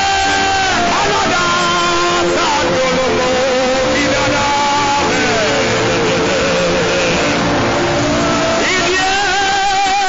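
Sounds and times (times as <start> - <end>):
many voices praying aloud: 0.0 - 10.0.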